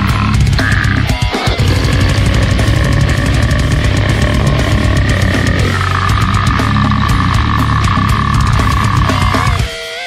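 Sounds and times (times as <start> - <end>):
pounding drums: 0.0 - 9.8
death metal music: 0.0 - 10.0
distorted guitars: 0.0 - 10.0.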